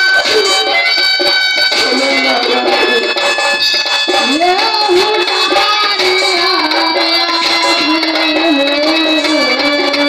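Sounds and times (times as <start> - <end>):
sustained keyboard notes: 0.0 - 10.0
person singing into microphone: 4.1 - 10.0.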